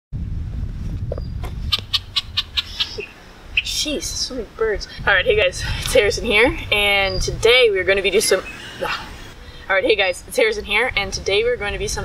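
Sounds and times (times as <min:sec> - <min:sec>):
birds chirping: 0:01.2 - 0:11.4.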